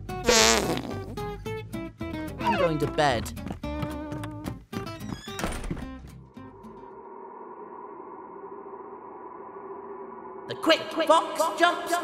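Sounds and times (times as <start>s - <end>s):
cartoon wobbling rasp: 0.3s - 1.1s.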